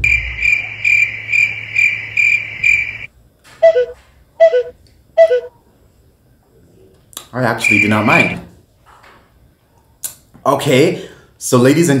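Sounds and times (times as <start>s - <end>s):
low hum: 0.0s - 3.1s
crickets chirping: 0.0s - 5.5s, 7.4s - 8.6s.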